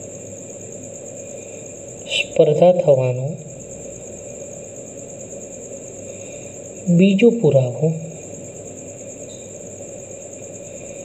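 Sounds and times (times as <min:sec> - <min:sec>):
crickets chirping: 0:00.0 - 0:11.0
low background hum: 0:00.0 - 0:11.0.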